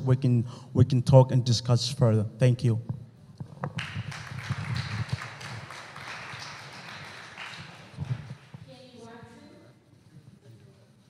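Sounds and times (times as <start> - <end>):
audience applauding: 3.7 - 8.6.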